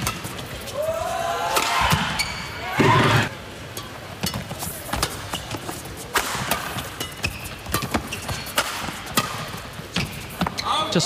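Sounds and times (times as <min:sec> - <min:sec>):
racket hitting shuttlecock: 0:00.0 - 0:00.6, 0:01.5 - 0:02.2, 0:02.9 - 0:10.6
shoes squeaking on court: 0:02.1 - 0:11.0.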